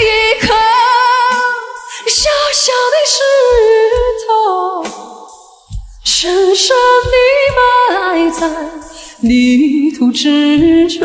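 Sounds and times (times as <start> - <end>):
low drum beats: 0.0 - 5.0, 5.7 - 9.7, 10.6 - 11.0.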